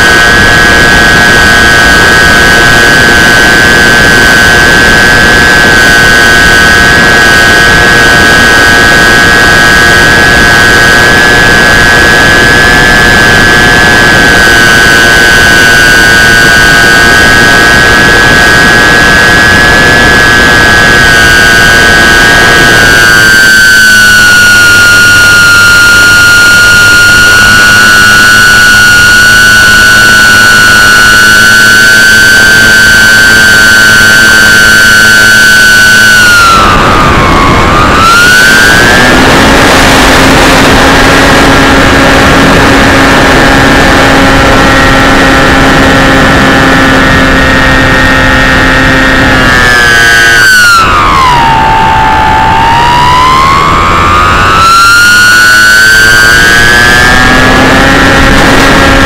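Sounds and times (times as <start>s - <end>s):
electric motor propeller whine: 0.0s - 32.0s, 35.7s - 59.0s
rushing wind noise: 0.0s - 59.0s.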